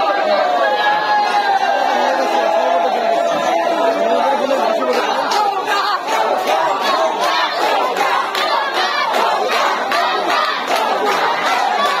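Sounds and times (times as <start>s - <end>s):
crowd shouting: 0.0s - 12.0s.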